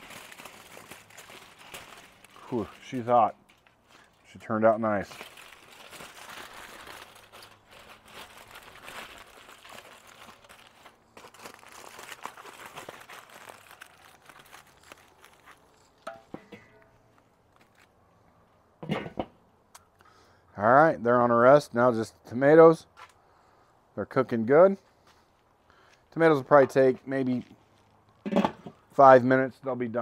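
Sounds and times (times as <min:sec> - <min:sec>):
aluminium foil crinkling: 0:00.0 - 0:16.1.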